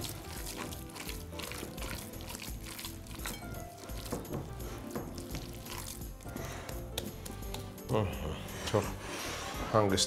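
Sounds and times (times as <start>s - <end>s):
hands kneading minced meat: 0.0s - 9.6s
background music: 0.0s - 10.0s.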